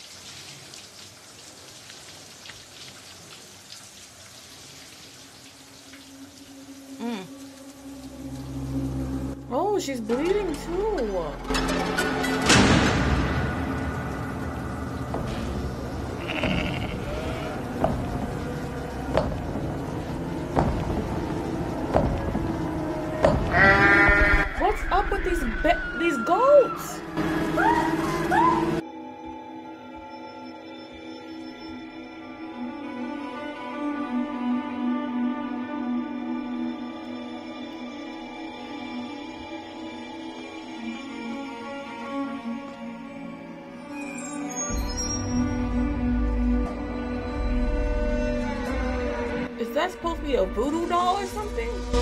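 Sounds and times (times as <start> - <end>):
shower water on tiles: 0.0 - 11.1, 12.0 - 25.5
music: 5.8 - 52.0
goat-like bleating cry: 16.2 - 17.6, 23.5 - 24.6.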